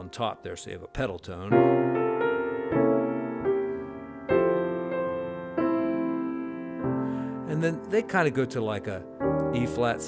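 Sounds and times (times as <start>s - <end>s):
piano playing slow jazz chords: 0.0s - 10.0s.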